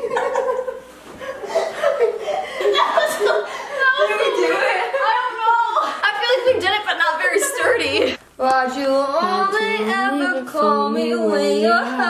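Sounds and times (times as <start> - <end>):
women laughing: 0.0 - 6.6.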